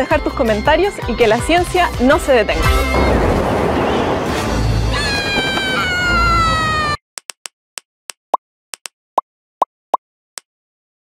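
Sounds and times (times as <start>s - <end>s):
cartoon high-pitched scream: 4.9s - 7.0s.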